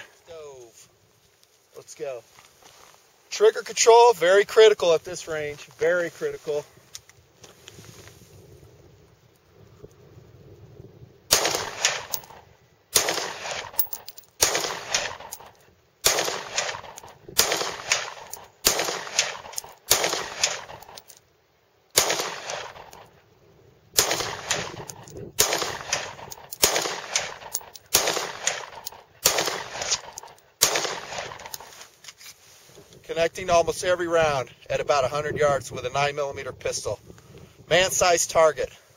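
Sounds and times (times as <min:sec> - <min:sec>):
pistol shots with echo: 0:11.3 - 0:15.4, 0:16.0 - 0:21.0, 0:22.0 - 0:23.1, 0:24.0 - 0:31.5.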